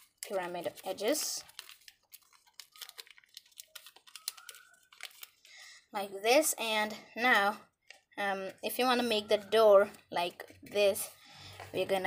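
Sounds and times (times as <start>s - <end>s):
paper crackling as it is creased: 0.0s - 5.8s.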